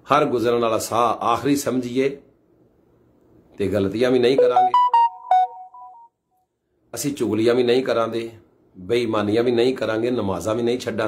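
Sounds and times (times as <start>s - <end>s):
electronic beeping melody: 4.4s - 6.1s.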